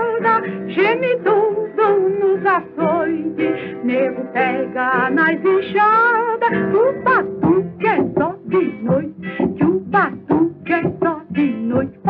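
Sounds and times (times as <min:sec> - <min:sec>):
acoustic guitars playing dance rhythm: 0:00.0 - 0:12.0
person singing: 0:00.0 - 0:12.0.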